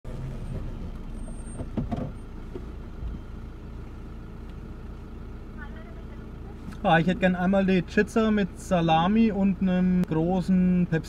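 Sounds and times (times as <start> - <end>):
car engine rumble from cabin: 0.0 - 11.0.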